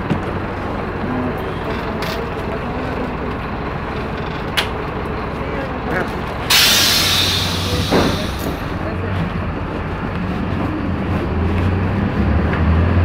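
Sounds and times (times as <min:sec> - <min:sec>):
bus engine and road noise: 0:00.0 - 0:13.0.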